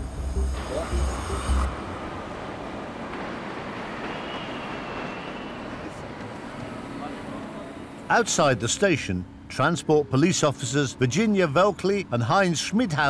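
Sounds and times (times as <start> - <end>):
music: 0.0 - 2.1
trains: 0.0 - 13.0
crowd hubbub: 0.6 - 9.0.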